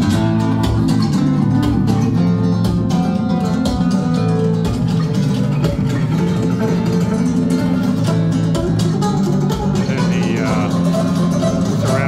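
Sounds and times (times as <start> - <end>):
flamenco guitar through loudspeakers: 0.0 - 12.0.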